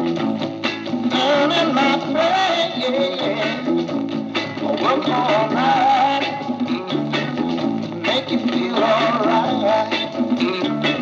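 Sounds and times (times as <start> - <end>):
instrumental beat music on record player: 0.0 - 11.0.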